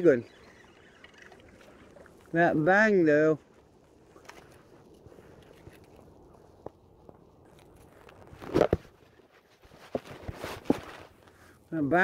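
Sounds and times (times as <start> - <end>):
rough scuffing: 6.7 - 11.2.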